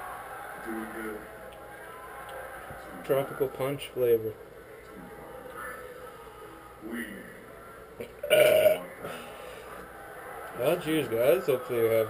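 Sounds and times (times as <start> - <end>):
man burping loudly: 8.0 - 9.2.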